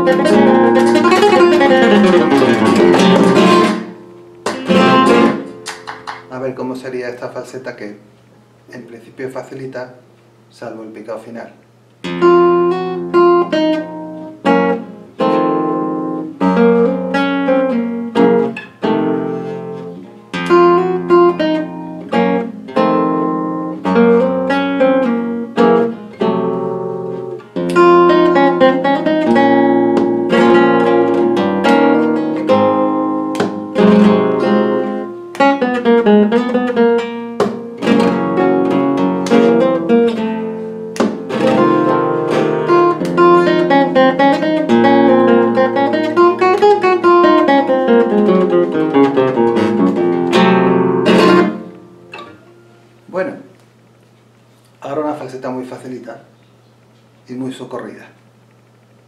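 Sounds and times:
solo flamenco guitar: 0.0 - 6.4, 12.0 - 53.0.

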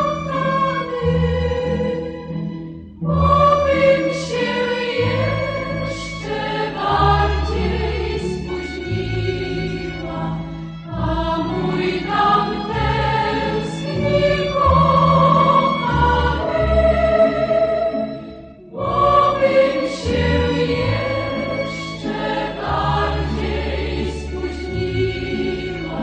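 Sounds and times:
instrumental accompaniment: 0.0 - 26.0
choir singing held notes: 3.0 - 26.0.

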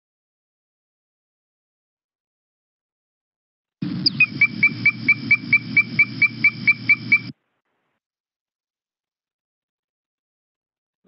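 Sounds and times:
frog calling with whistled toots: 3.8 - 7.3.

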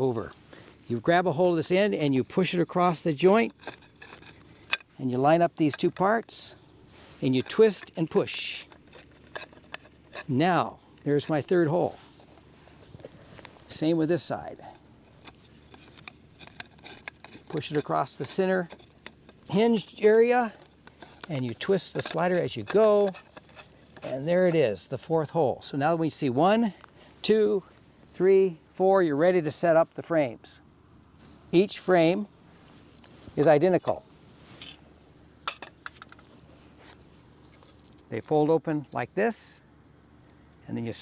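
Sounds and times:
light clicks and rustles: 7.0 - 13.8, 14.6 - 25.0, 32.6 - 38.4.

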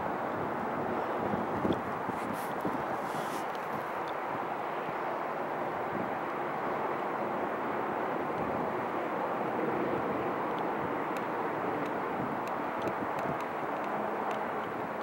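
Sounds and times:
distant engines rumbling: 0.0 - 15.0.

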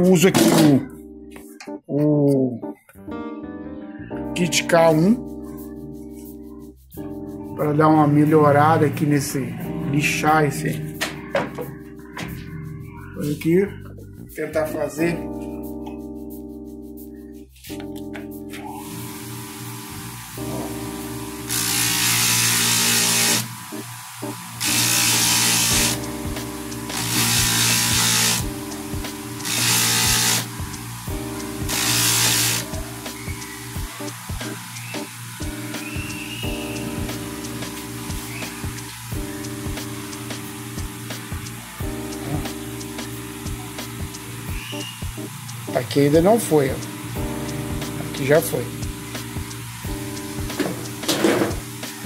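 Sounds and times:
background music: 0.0 - 52.0
sharpening machine grinding metal: 21.5 - 23.6, 24.6 - 26.0, 26.9 - 28.4, 29.4 - 30.6, 31.7 - 32.7.

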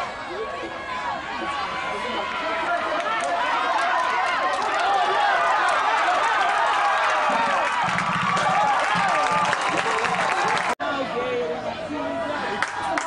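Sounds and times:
crowd cheering and yelling: 0.0 - 13.0.

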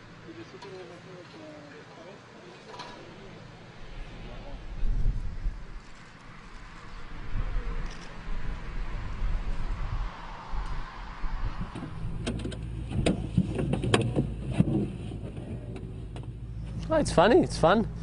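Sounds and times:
sharp clicks and clunks: 11.7 - 16.4.

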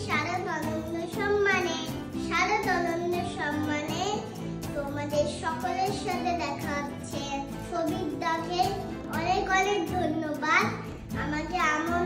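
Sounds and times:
background music: 0.0 - 12.0
girl singing: 0.0 - 12.0.

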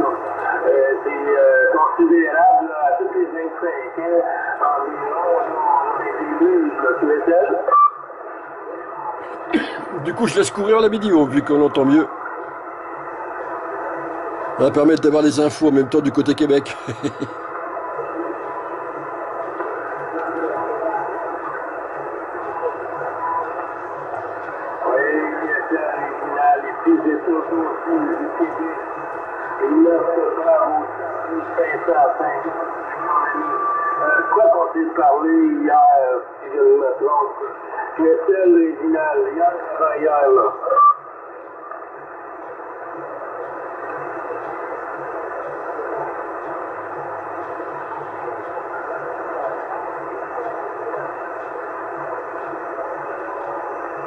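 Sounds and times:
radio band hiss: 0.0 - 54.0.

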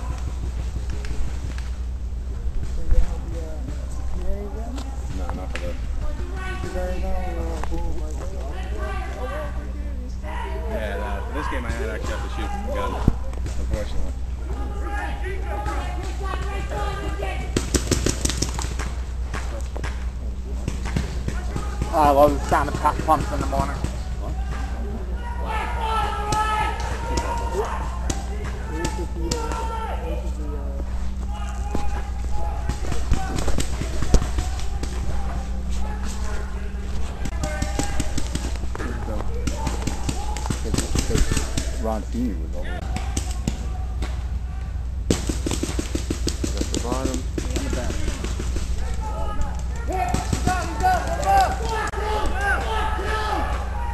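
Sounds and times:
steady low rumble: 0.0 - 53.9
paintball markers firing: 17.4 - 20.0, 37.2 - 41.8, 45.1 - 52.6.

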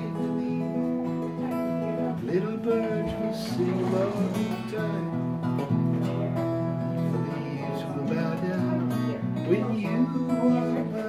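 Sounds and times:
acoustic guitar chords: 0.0 - 11.0
man singing: 0.0 - 11.0.

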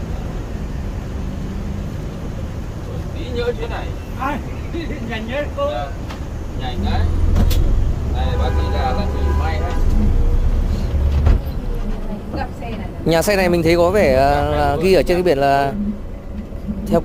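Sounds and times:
bus diesel engine rumble: 0.0 - 17.0
road noise: 0.0 - 17.0.

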